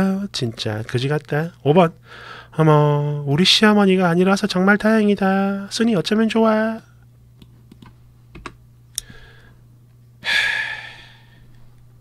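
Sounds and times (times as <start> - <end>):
low electrical hum: 0.0 - 12.0
keyboard keystroke clicks: 7.4 - 8.6.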